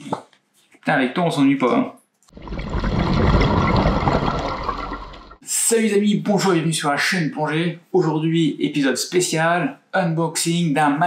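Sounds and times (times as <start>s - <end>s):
surge of water with deep rumble: 2.4s - 5.4s.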